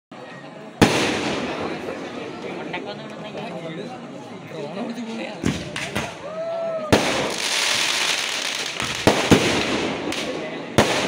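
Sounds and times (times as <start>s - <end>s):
crackle of sparks: 7.0s - 11.0s.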